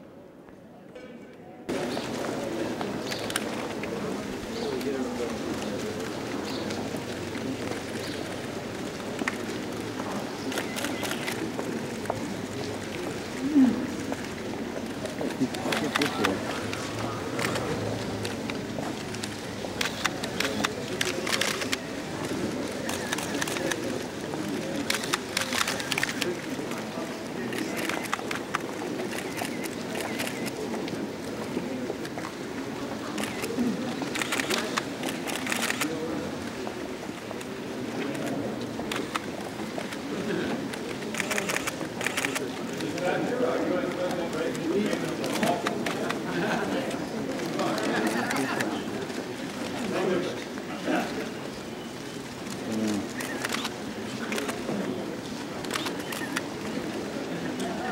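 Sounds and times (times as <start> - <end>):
low murmur of a gathering: 0.0 - 57.9
faint patter: 0.5 - 57.9
camera shutters clicking: 10.5 - 11.4, 19.8 - 21.8, 24.8 - 26.2, 34.2 - 35.9, 41.2 - 42.4, 53.1 - 53.7, 55.6 - 56.4.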